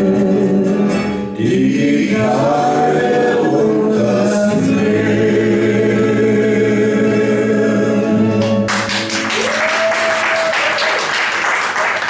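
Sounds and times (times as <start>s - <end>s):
man and woman singing duet: 0.0s - 8.4s
karaoke backing track: 0.0s - 10.5s.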